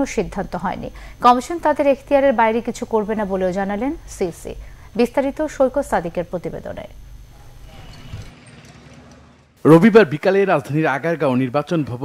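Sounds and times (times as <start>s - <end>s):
low hum: 0.0s - 9.9s.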